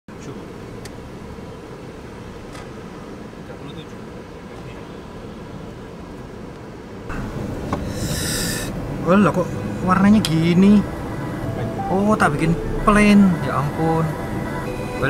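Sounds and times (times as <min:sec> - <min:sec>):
car engine and tyres rumbling: 0:00.1 - 0:15.0.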